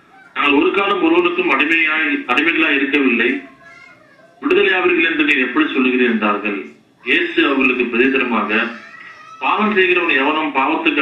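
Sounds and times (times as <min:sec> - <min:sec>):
man preaching: 0:00.4 - 0:03.5, 0:04.4 - 0:11.0.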